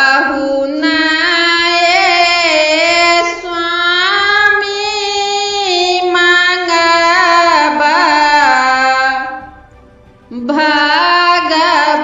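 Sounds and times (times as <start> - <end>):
woman singing unaccompanied: 0.0 - 9.6, 10.3 - 12.0.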